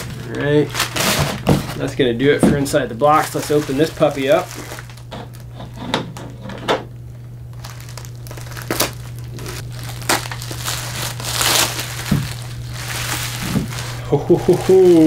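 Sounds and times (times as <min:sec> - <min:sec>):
knife cutting bubble wrap: 0:00.0 - 0:01.8, 0:07.6 - 0:14.0
plastic crinkling and crackling: 0:00.0 - 0:01.9, 0:02.7 - 0:05.6, 0:07.5 - 0:15.0.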